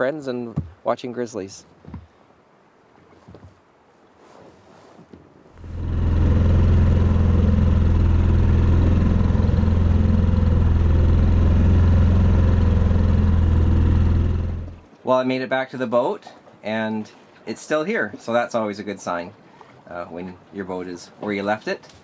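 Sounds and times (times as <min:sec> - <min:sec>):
outboard motor running: 0:05.6 - 0:14.9.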